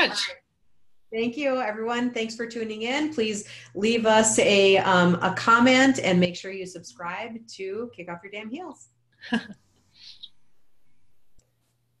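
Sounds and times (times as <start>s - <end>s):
woman's breathy laugh: 9.2s - 9.6s.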